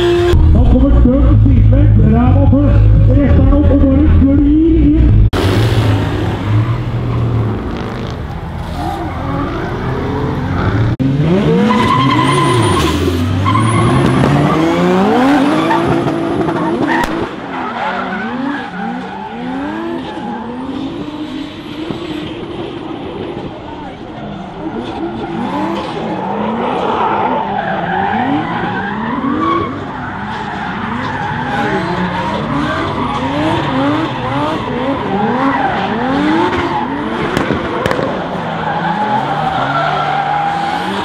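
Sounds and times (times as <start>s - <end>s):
car engines revving: 0.0s - 41.0s
tyres skidding: 1.4s - 41.0s.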